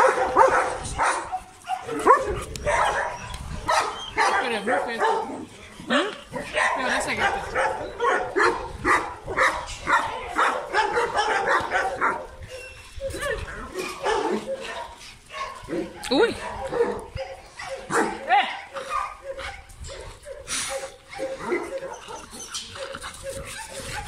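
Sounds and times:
dogs barking: 0:00.0 - 0:24.0
dog whining: 0:21.1 - 0:24.0.

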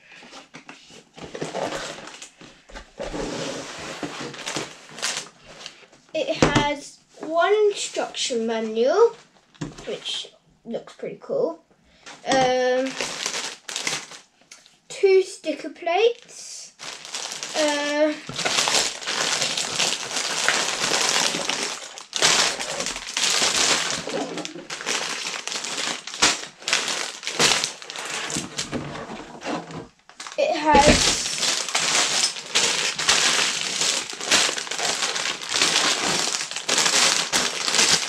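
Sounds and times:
plastic bags crinkling: 0:03.8 - 0:05.8, 0:12.2 - 0:14.3, 0:16.7 - 0:38.0.

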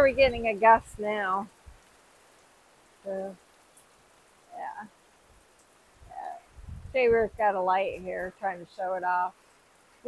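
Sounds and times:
wind buffeting microphone: 0:00.0 - 0:01.2, 0:06.0 - 0:08.3
rain hiss: 0:00.0 - 0:10.0.

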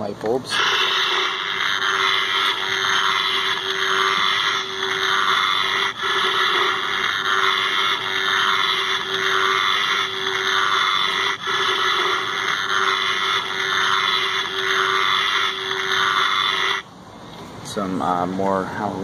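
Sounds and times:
steady hum: 0:00.0 - 0:19.0
harsh electric buzz: 0:00.5 - 0:16.9.

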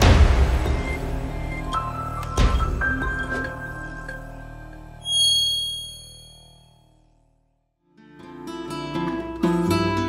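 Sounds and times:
bright metallic ding: 0:05.0 - 0:06.8.

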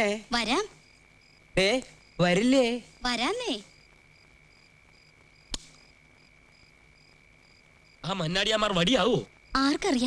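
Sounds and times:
faint insect chirping: 0:00.0 - 0:10.0
sharp click: 0:05.5 - 0:05.8.

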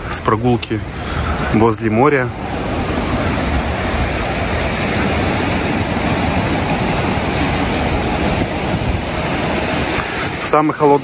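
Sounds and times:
sea surf breaking on rocks: 0:00.0 - 0:11.0
wind rumbling on microphone: 0:00.0 - 0:11.0.

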